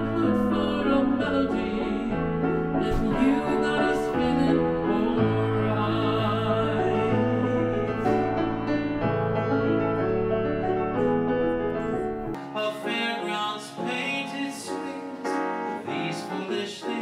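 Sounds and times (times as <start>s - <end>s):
grand piano playing: 0.0s - 17.0s.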